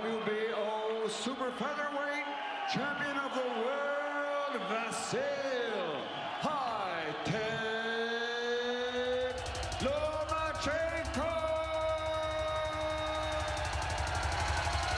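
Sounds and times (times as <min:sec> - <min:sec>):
fast driving beat: 0:08.9 - 0:14.9.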